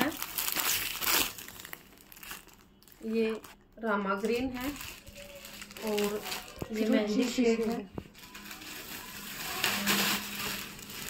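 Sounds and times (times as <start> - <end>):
plastic packaging crinkling: 0.0 - 11.0.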